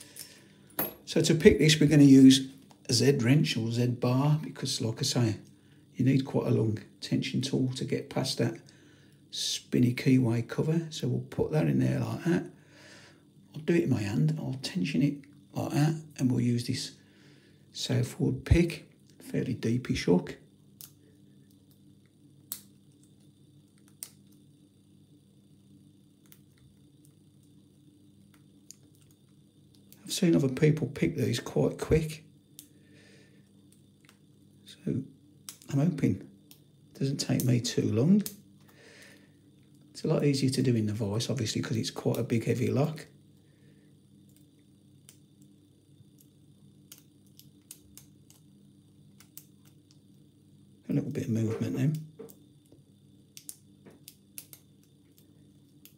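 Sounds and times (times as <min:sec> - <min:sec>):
low steady hum: 0:00.0 - 0:55.9.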